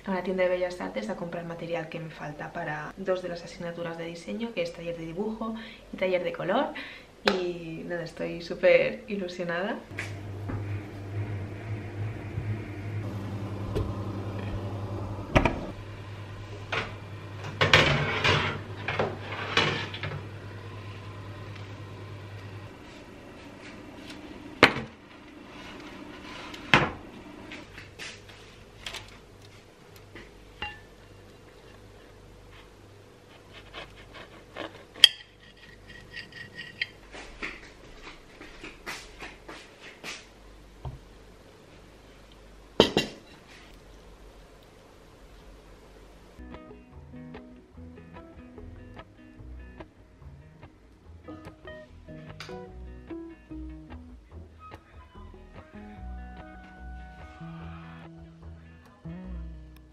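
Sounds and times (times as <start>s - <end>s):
appliance electrical hum: 0.0s - 59.9s
knife scraping potato skin: 33.3s - 36.9s
knife scraping on plate: 33.4s - 37.0s.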